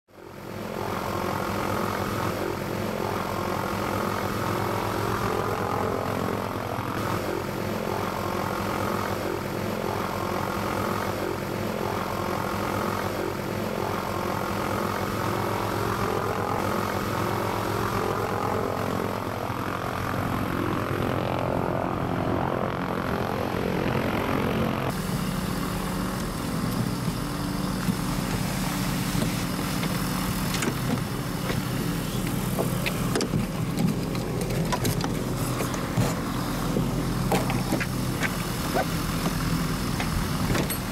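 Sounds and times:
propeller aircraft engine running: 0.1 - 40.9.

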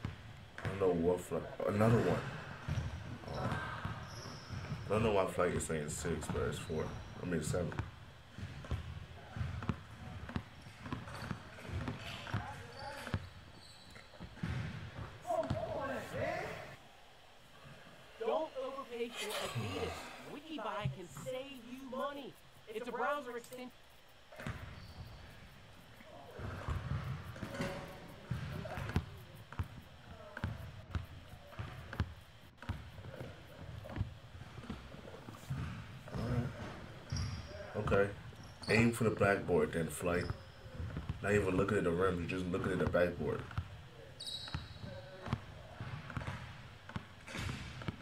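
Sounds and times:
basketball dribbling thuds: 2.0 - 6.5, 7.5 - 15.9, 26.3 - 38.8, 40.2 - 48.0.

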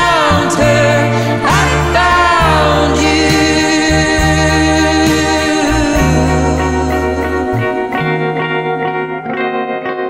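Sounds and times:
recorded song with singer: 0.0 - 9.6.

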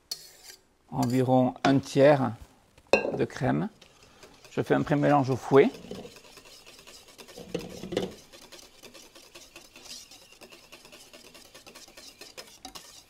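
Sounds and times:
whisk wires scraping a steel bowl: 0.0 - 1.3, 3.4 - 13.0.

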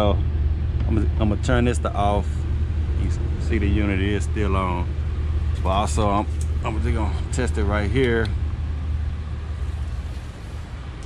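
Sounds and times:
hvac unit humming: 0.0 - 11.0.

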